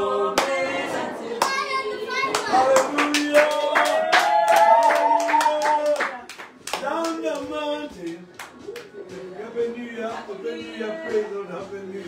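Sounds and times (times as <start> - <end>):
voices singing held notes: 0.0 - 4.4, 8.9 - 12.0
people clapping in rhythm: 0.0 - 12.0.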